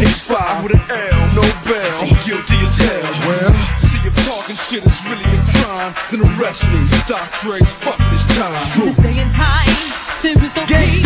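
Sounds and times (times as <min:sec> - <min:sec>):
heavy bass notes: 0:00.0 - 0:09.8
rapping over a beat: 0:00.0 - 0:11.0.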